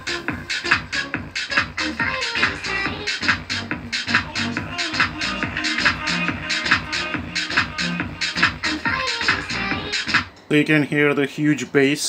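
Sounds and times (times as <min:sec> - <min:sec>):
electronic dance music with heavy bass: 0:00.0 - 0:10.3.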